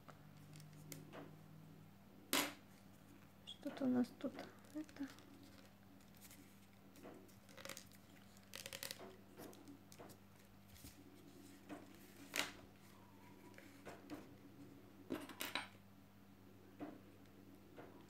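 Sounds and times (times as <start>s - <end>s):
paper tubes rustling: 4.4s - 14.1s.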